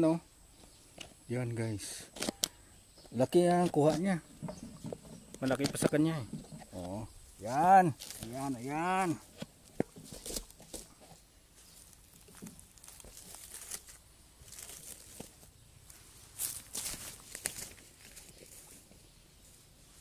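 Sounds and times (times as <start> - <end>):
faint outdoor background: 0.0 - 20.0
leaves and undergrowth crackling: 3.3 - 20.0.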